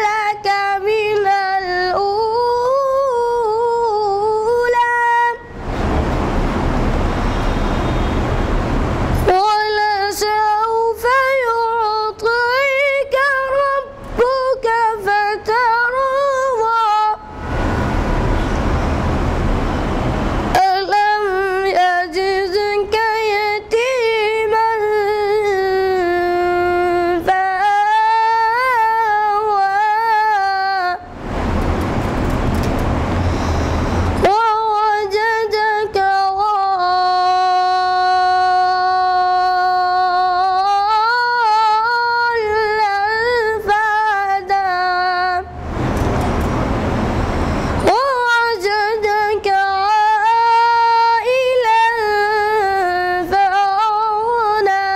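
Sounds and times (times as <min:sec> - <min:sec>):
boy singing unaccompanied: 0:00.0 - 0:05.6, 0:09.2 - 0:17.3, 0:20.5 - 0:31.1, 0:34.2 - 0:45.5, 0:47.8 - 0:54.9
steady rumbling noise: 0:05.3 - 0:11.4, 0:12.2 - 0:36.4, 0:45.4 - 0:53.3
loud rushing noise: 0:05.4 - 0:09.4, 0:17.2 - 0:20.6, 0:31.0 - 0:34.3, 0:45.5 - 0:47.9
person singing: 0:47.8 - 0:54.9.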